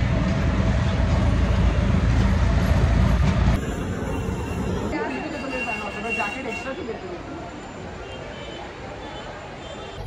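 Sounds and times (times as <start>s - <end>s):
train rumbling: 0.0s - 7.2s.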